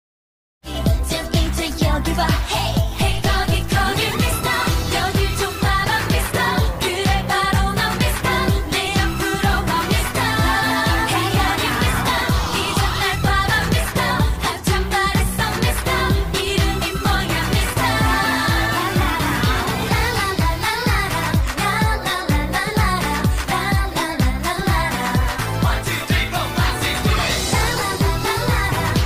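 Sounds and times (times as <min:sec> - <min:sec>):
electronic beat with heavy bass: 0:00.7 - 0:29.0
woman singing: 0:00.7 - 0:29.0.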